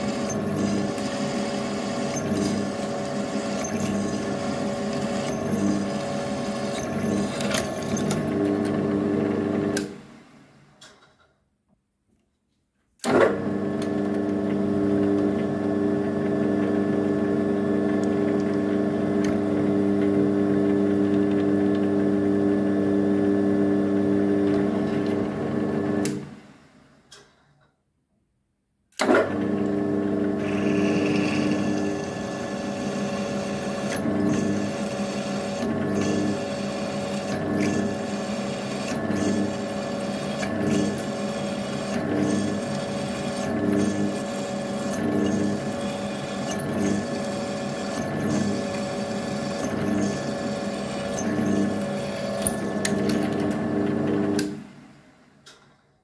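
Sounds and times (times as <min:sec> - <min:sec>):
drill bit cutting metal: 0:00.0 - 0:08.2, 0:30.4 - 0:53.2
drill motor humming: 0:00.0 - 0:09.9, 0:29.9 - 0:54.6.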